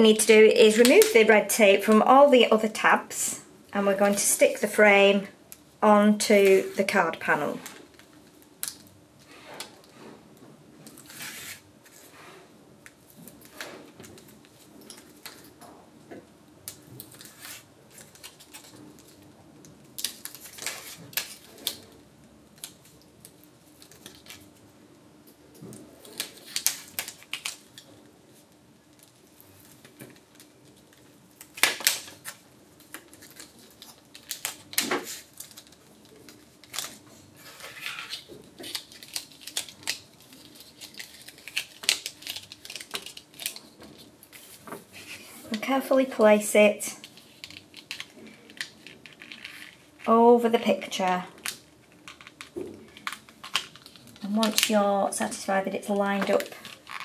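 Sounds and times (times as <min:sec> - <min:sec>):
crackling and scratching: 0:25.4 - 0:57.0
tape liner peeling: 0:33.0 - 0:43.7.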